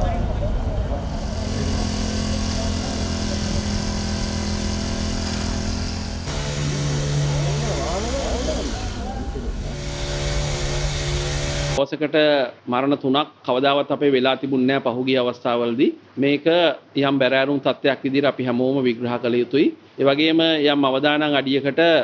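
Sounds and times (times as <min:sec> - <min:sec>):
faint voices: 0:00.0 - 0:04.2, 0:06.6 - 0:09.8.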